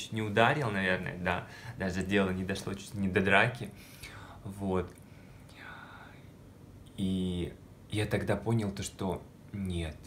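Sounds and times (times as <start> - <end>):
person speaking: 0.0 - 5.0
soft breath: 1.4 - 1.8, 3.7 - 6.4.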